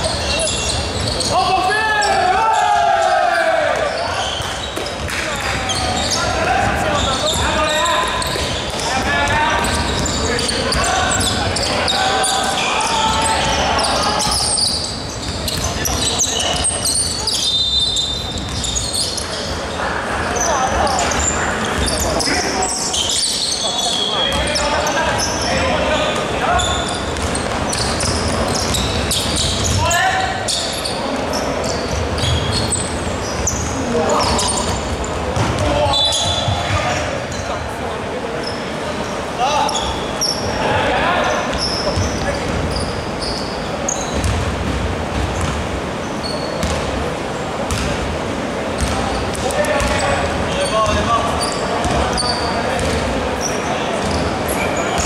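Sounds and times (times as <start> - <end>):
shoes squeaking: 0.0 - 37.7, 38.4 - 44.4, 45.1 - 47.0, 48.8 - 55.0
players calling out: 0.0 - 44.4
basketball bouncing on hardwood: 48.8 - 50.0, 52.8 - 53.0.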